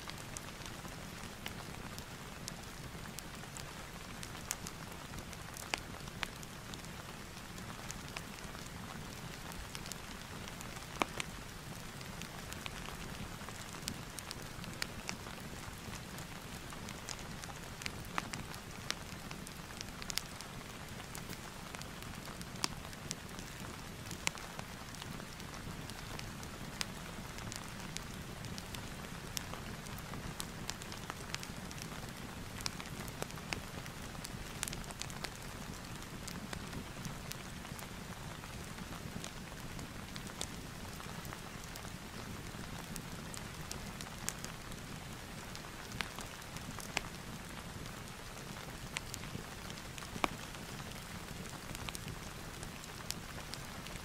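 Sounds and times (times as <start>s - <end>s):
steady rain: 0.0s - 54.0s
wood fire crackling: 0.0s - 54.0s.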